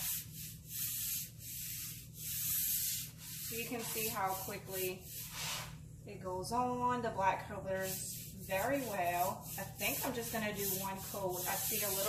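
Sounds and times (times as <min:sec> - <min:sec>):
paintbrush swishing on wood: 0:00.0 - 0:05.8, 0:07.8 - 0:12.0.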